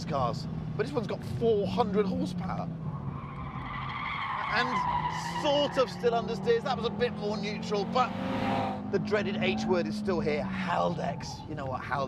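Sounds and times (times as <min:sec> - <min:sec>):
tyres squealing: 0:03.0 - 0:11.5.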